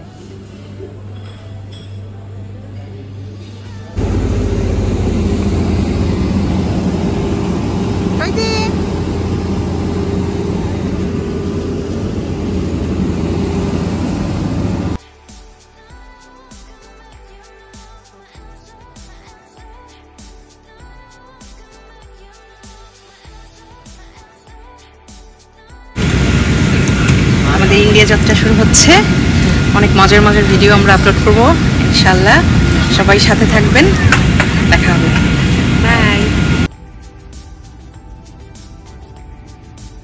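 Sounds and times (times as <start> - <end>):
jet airliner humming: 4.0 - 15.0, 26.0 - 36.7
soft background music: 29.7 - 40.0.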